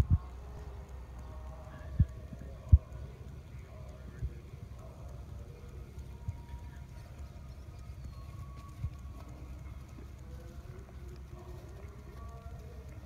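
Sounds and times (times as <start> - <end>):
horse hooves on sand: 0.0 - 13.0
steady low rumble: 0.0 - 13.0.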